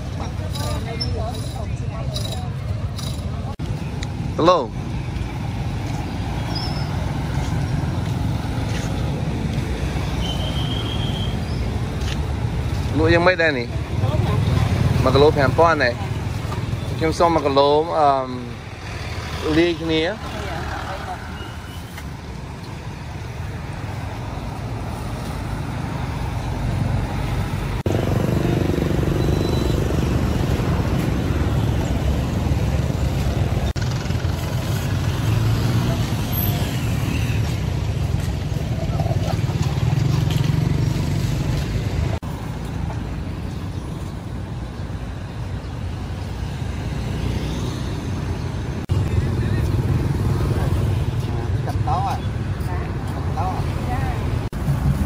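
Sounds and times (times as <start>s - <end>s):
motorbike and car engines passing: 0.0s - 55.0s.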